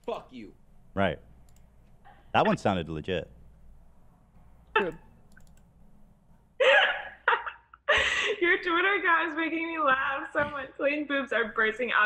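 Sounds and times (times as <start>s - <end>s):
woman laughing: 6.6s - 8.6s.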